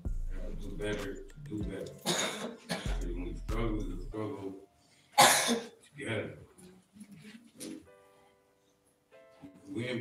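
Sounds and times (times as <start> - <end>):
soft music: 0.0 - 10.0
person coughing: 2.0 - 3.2, 5.2 - 5.8.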